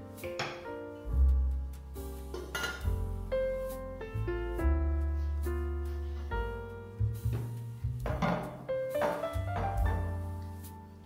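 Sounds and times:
piano music: 0.0s - 11.0s.

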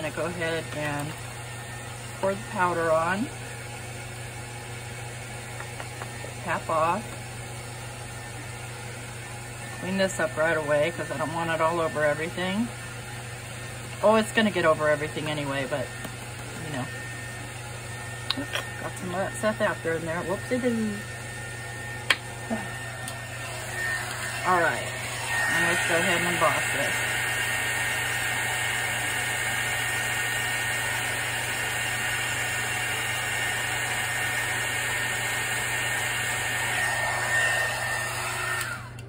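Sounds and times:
laminator humming: 0.0s - 39.0s.

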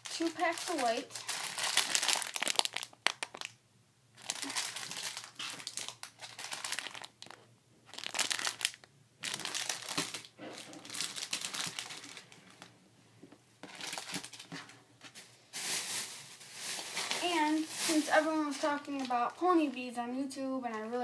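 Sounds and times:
plastic packets crinkling: 0.0s - 3.6s, 4.2s - 12.8s, 13.6s - 19.8s.

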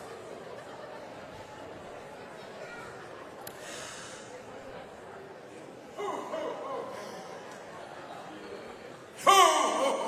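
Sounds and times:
faint room murmur: 0.0s - 9.3s.

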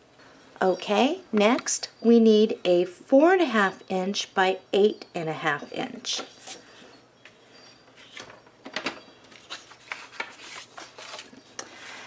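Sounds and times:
cardstock rustling and scraping: 9.3s - 12.0s.

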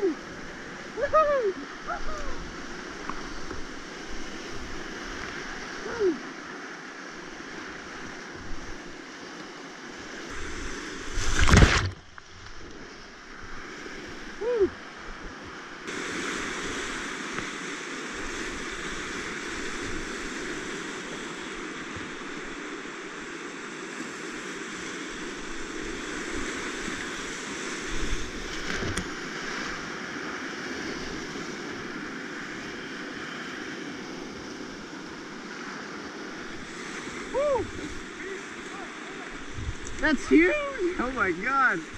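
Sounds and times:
whitewater rapids rushing: 36.4s - 41.9s.

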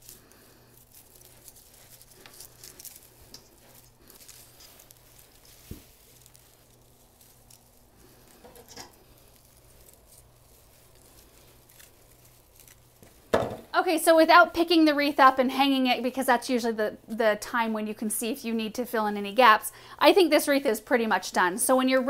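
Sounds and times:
rustling and crinkling of leaves: 0.0s - 16.4s.

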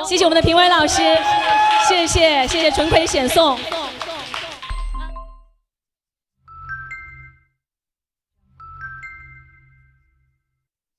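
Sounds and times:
bell-like chime: 6.5s - 7.6s, 8.6s - 10.6s.

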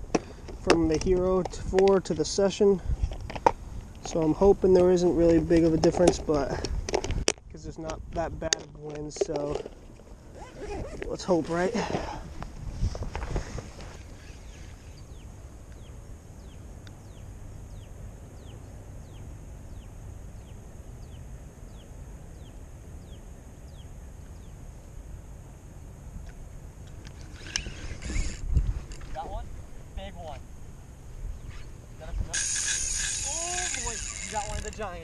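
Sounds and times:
wind rumbling on microphone: 0.0s - 35.0s
short high falling squeaks: 13.8s - 15.2s, 27.3s - 29.1s, 31.4s - 34.8s.

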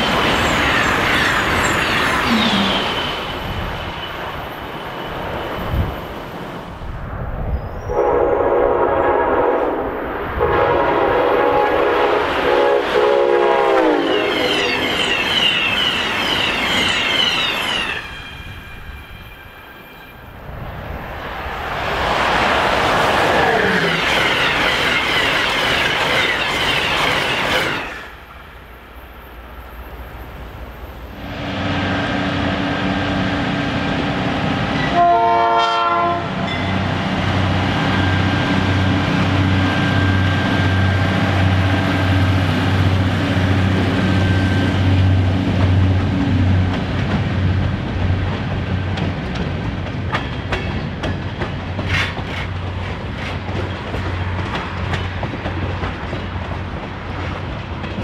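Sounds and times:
train horn: 7.9s - 14.6s, 34.8s - 36.5s
wheels on rails: 22.1s - 28.2s, 36.5s - 58.0s
locomotive engine drone: 29.7s - 35.2s, 36.3s - 49.4s.

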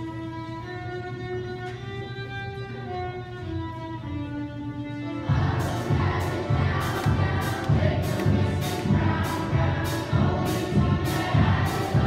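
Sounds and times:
string orchestra playing: 0.0s - 12.0s.

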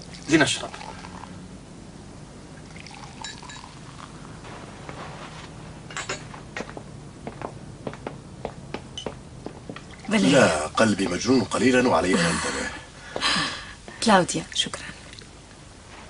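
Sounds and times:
drink poured into a glass: 2.7s - 4.1s
high heels on wooden floor: 6.4s - 9.9s.

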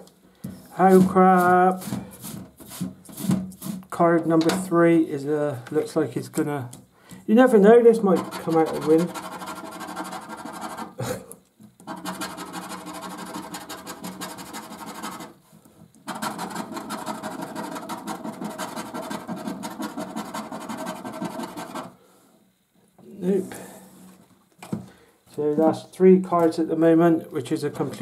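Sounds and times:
scratchcard being scratched: 7.9s - 11.0s, 11.8s - 15.4s, 16.0s - 21.9s.

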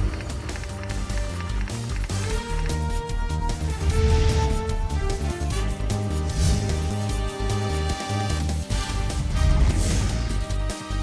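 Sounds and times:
dramatic theme music with heavy bass: 0.0s - 11.0s.

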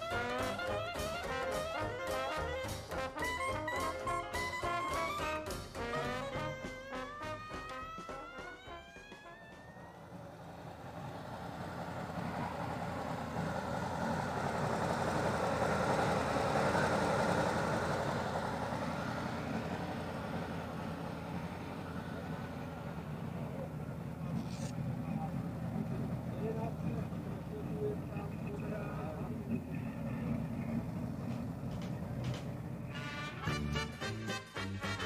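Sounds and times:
truck engine idling: 0.0s - 35.0s
murmur of voices: 23.1s - 32.8s.

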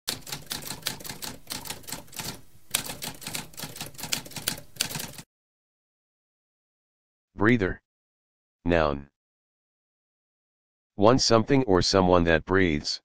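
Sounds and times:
typewriter keystrokes clattering: 0.1s - 5.2s.

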